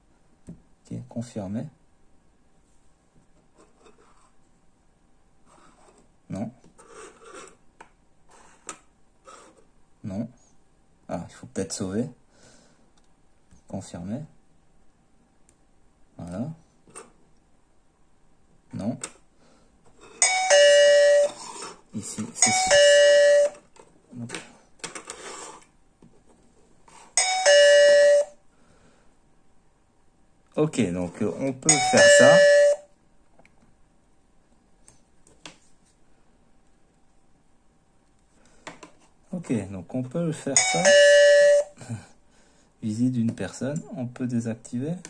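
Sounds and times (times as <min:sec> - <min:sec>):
two-tone electronic doorbell chime: 0:20.2 - 0:21.4, 0:22.4 - 0:23.6, 0:27.2 - 0:28.4, 0:31.7 - 0:32.9, 0:40.5 - 0:41.8.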